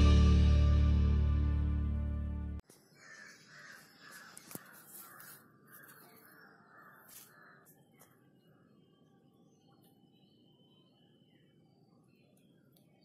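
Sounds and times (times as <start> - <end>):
guitar music: 0.0 - 2.6
crow cawing: 2.9 - 7.7.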